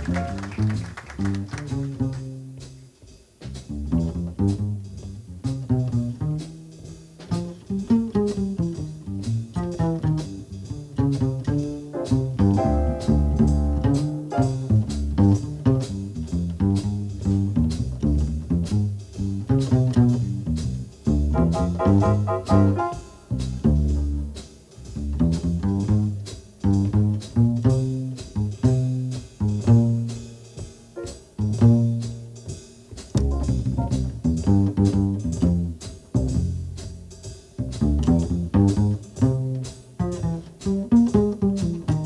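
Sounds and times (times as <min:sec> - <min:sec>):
plucked double bass solo: 0:00.0 - 0:02.8, 0:03.4 - 0:30.4, 0:31.0 - 0:32.5, 0:33.1 - 0:42.0
drum and cymbal strokes: 0:01.8 - 0:42.0.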